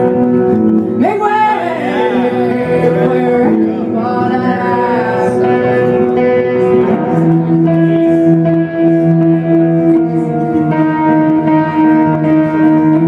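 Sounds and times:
electric guitar long held notes: 0.0 - 13.0
woman singing gliding note: 1.0 - 5.8.

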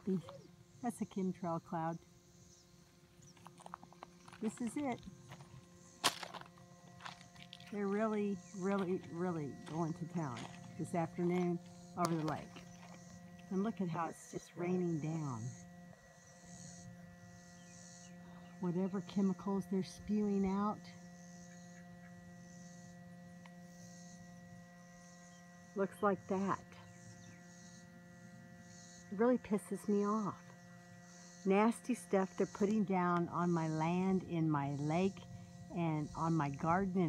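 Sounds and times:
faint outdoor background: 0.0 - 37.0
faint steady hum: 0.0 - 37.0.

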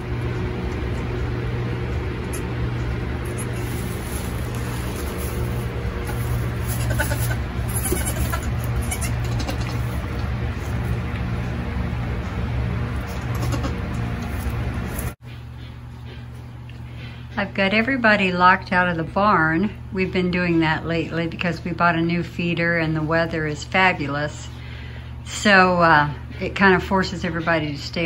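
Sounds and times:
steady low hum: 0.0 - 28.0
goats bleating: 6.0 - 10.0, 13.2 - 13.9.

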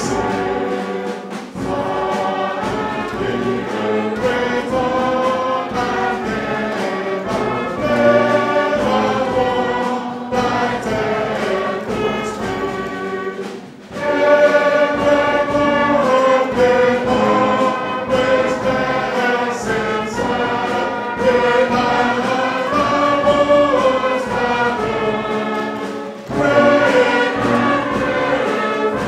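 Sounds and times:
choir singing a hymn: 0.0 - 29.0.

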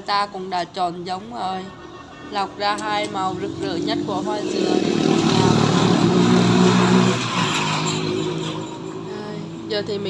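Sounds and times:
engine running: 2.4 - 10.0.

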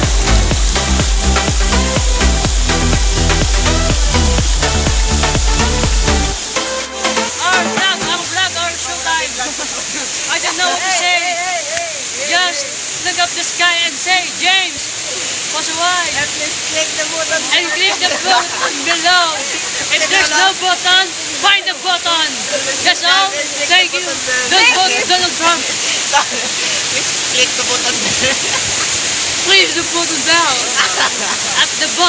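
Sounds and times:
waterfall rushing: 0.0 - 32.0
voices chattering and laughing: 7.4 - 13.2, 14.4 - 32.0.

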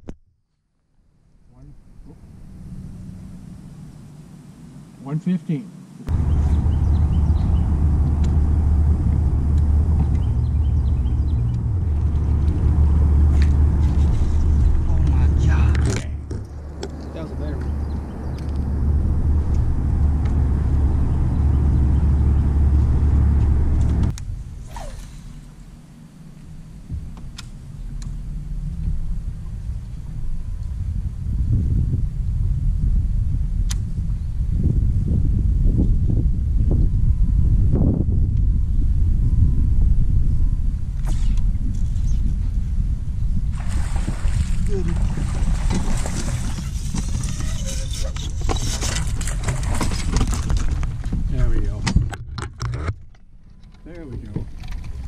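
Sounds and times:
wind rumble on microphone: 6.0 - 55.0.

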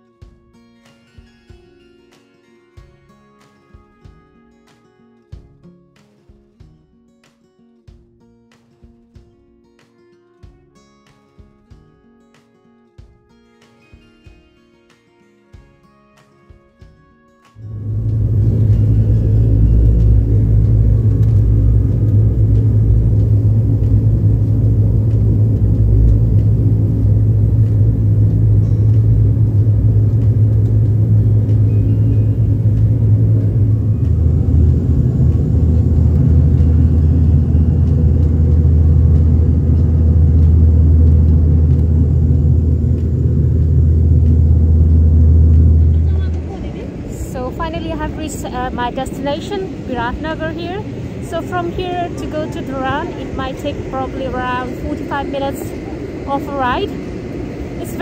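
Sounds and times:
propeller engines droning: 17.6 - 58.0.

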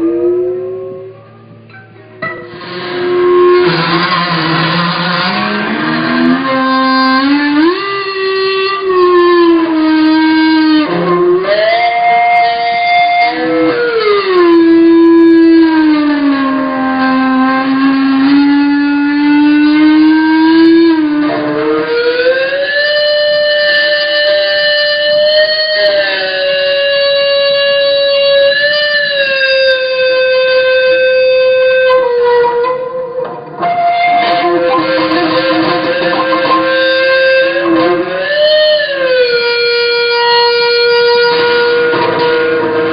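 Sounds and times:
distorted electric guitar feedback: 0.0 - 42.9.

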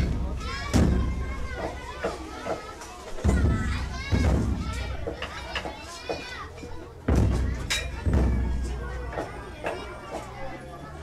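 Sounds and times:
low thuds: 0.0 - 1.9, 3.3 - 5.5, 7.0 - 10.3
children calling and chattering: 0.0 - 11.0.

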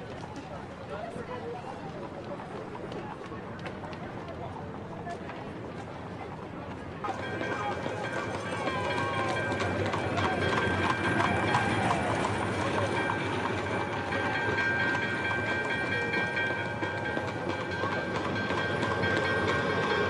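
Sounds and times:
horse hooves galloping: 0.0 - 20.0
wheels clattering over cobblestones: 0.0 - 20.0.

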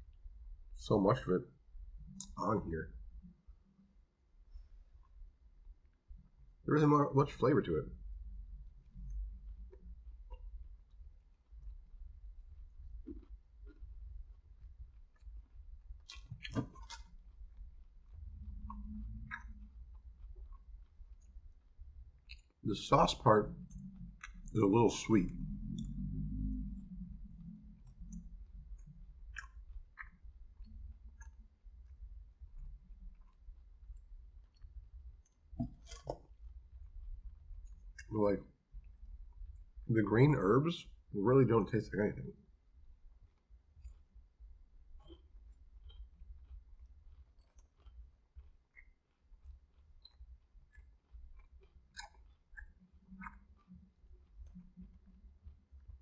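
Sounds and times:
low steady hum: 0.0 - 56.0
wet mouth chewing clicks: 12.6 - 22.6, 23.5 - 24.6, 25.2 - 38.1, 43.2 - 56.0.

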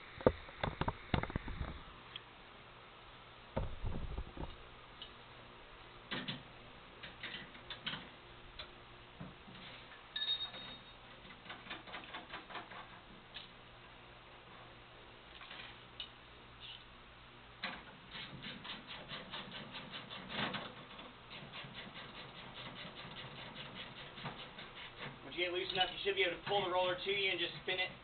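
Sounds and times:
brief ringing tone: 10.2 - 11.0.

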